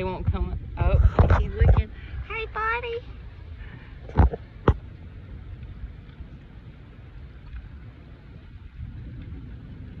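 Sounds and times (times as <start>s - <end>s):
boat low rumble: 0.0s - 10.0s.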